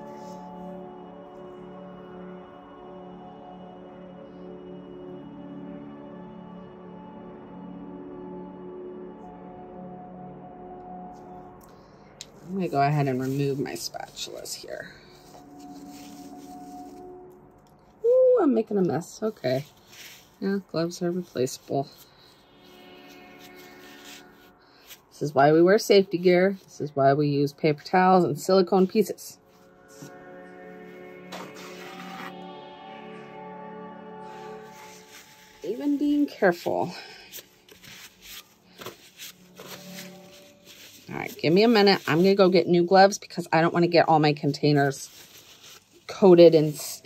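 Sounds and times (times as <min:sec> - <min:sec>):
paper towel rustling: 0:12.4 - 0:17.2, 0:19.0 - 0:26.7, 0:30.8 - 0:32.5, 0:34.2 - 0:47.0.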